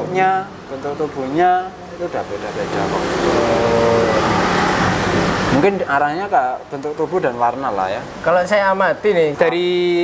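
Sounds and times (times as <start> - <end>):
vehicle engine passing: 2.2 - 5.8.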